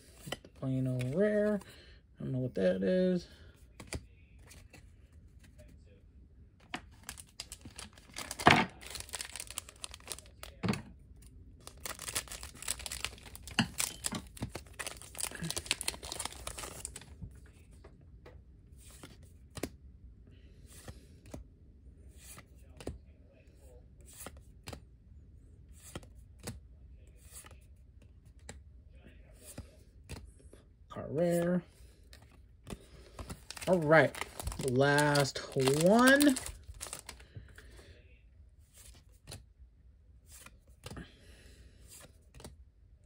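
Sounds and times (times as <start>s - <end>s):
trading cards being handled: 0.0s - 1.7s, 3.6s - 5.7s, 6.6s - 10.6s, 11.2s - 17.7s, 25.7s - 28.6s, 31.3s - 37.6s, 38.7s - 39.5s, 40.3s - 41.0s.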